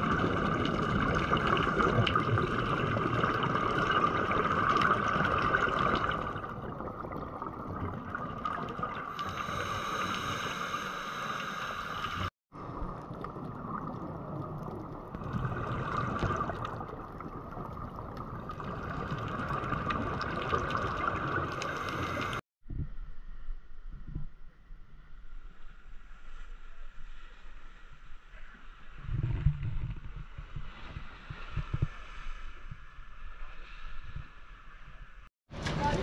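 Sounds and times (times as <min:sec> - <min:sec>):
muffled underwater rushing water: 0:00.0 - 0:22.4.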